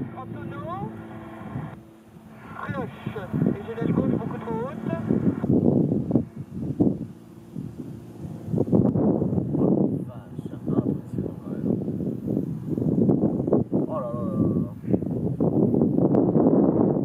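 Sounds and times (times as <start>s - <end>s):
people talking: 0.0s - 0.9s, 2.5s - 5.1s, 9.6s - 11.7s, 13.9s - 15.0s
distant plane engine droning: 0.0s - 16.6s.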